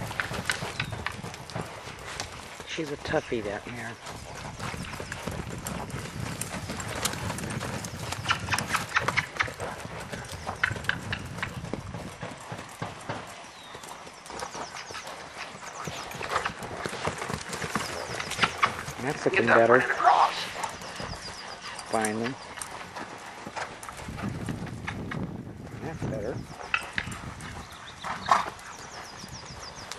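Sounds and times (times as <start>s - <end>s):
horse hoofbeats on sand: 0.0s - 29.9s.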